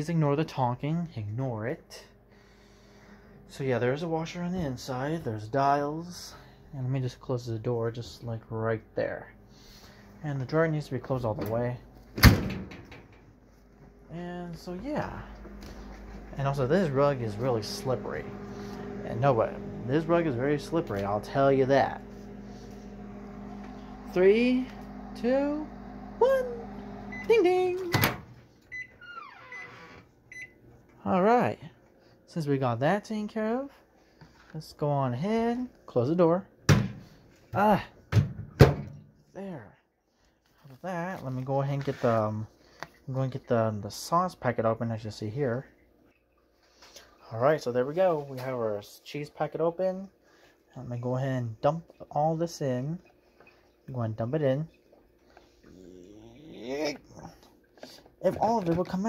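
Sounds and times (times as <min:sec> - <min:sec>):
microwave oven beeps: 0:15.1 - 0:30.6
microwave click: 0:15.3 - 0:28.8.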